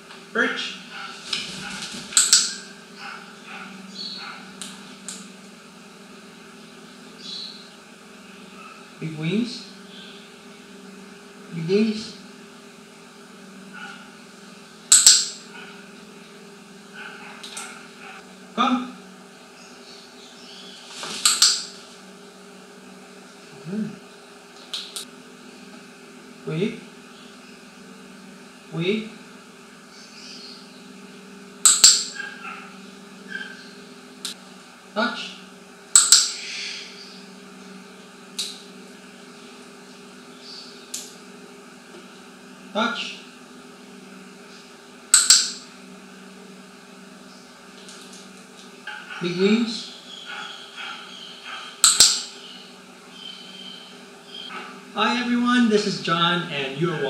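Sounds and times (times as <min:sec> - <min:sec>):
steady low hum: 0:00.0 - 0:57.0
training clicker clicks: 0:36.0 - 0:36.3, 0:51.8 - 0:52.2.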